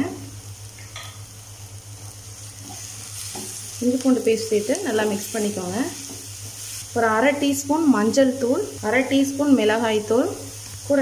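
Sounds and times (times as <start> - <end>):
vegetables sizzling in hot oil: 0.0 - 11.0.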